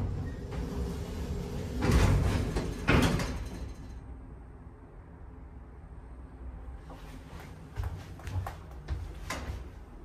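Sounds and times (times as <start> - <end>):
elevator doors sliding open: 0.0 - 4.1.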